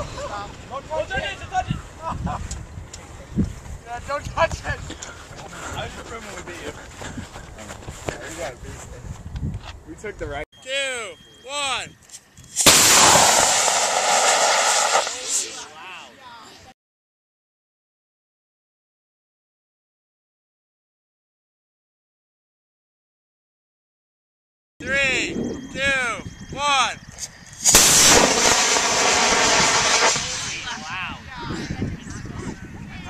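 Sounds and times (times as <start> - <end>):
model rocket motor blasting and hissing: 12.6 - 15.7, 27.6 - 30.8.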